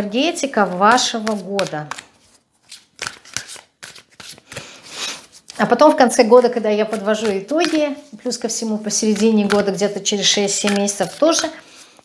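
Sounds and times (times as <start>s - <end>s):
cards being shuffled: 0.6s - 5.7s, 8.9s - 12.0s.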